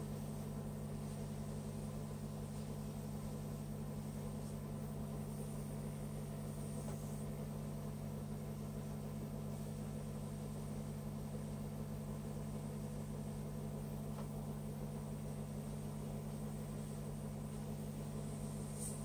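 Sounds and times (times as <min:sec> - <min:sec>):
airbrush compressor humming: 0:00.0 - 0:13.6, 0:15.1 - 0:19.0
air hissing: 0:18.2 - 0:19.0.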